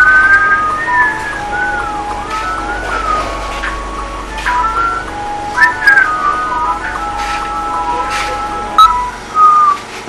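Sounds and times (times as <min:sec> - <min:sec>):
high whistle-like melody: 0:00.0 - 0:09.9.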